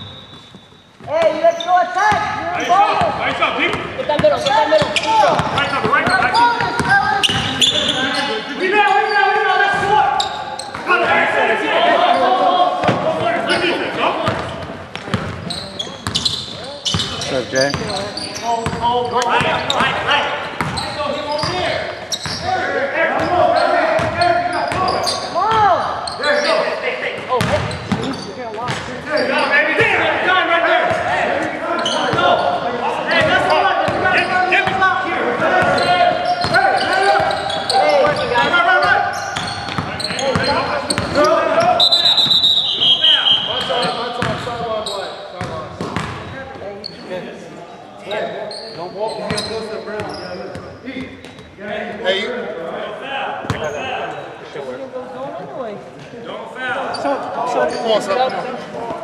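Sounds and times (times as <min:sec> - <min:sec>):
players shouting: 0:01.1 - 0:14.5, 0:29.0 - 0:44.9.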